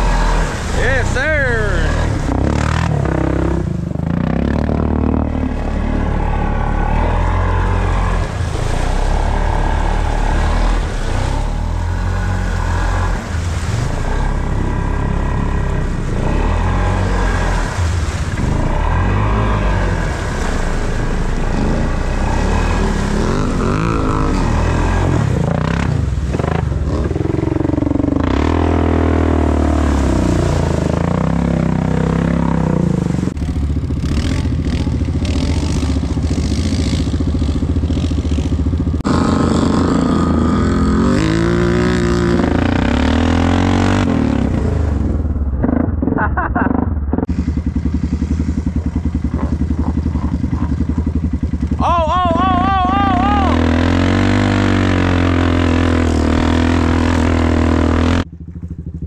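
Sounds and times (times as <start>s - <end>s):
atv engines revving: 0.0s - 59.0s.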